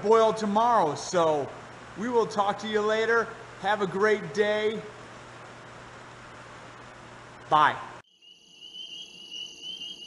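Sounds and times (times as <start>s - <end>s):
insect chorus: 8.0s - 10.0s.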